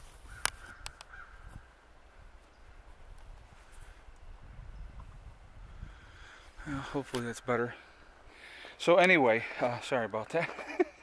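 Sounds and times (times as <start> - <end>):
rubbing and rustling on microphone: 0.0 - 1.6.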